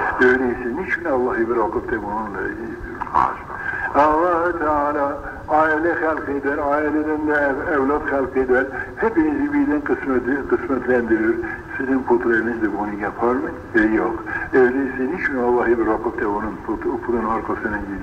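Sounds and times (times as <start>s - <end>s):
man speaking on old recording: 0.0s - 18.0s.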